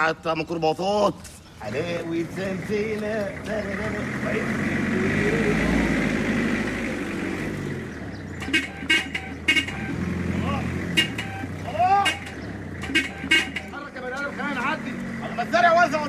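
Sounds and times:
man's voice: 0.0s - 6.0s, 13.8s - 16.0s
van engine passing: 0.0s - 16.0s
short horn toots: 8.4s - 10.1s, 10.9s - 13.8s.

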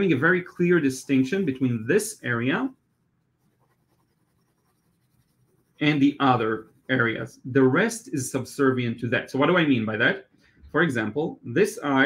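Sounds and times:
pencil scratching on paper: 0.0s - 7.3s.

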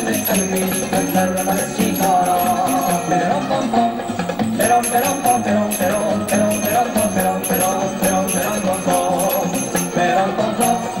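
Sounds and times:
belly dance music: 0.0s - 11.0s.

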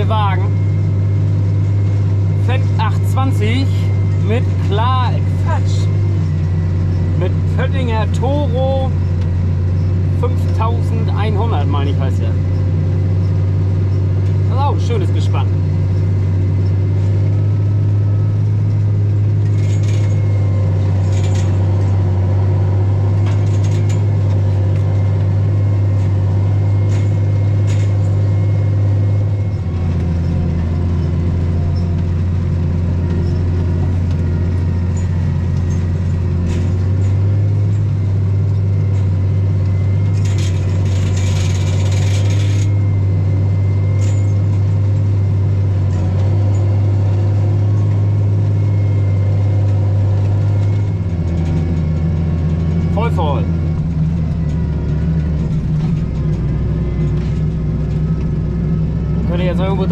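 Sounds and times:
tractor diesel engine drone: 0.0s - 59.9s.

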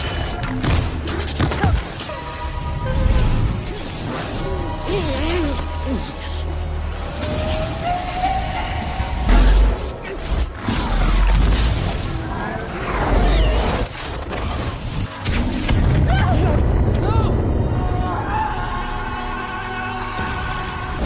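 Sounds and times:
dramatic film music: 0.0s - 21.0s.

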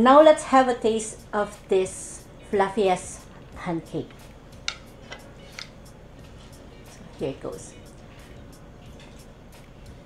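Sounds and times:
fork clicking on a plate: 4.6s - 5.8s.

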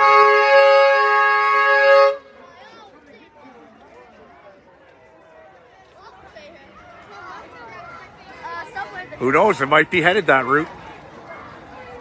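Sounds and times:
vehicle two-tone horn honking: 0.0s - 2.3s
crowd chatter: 0.0s - 12.0s.

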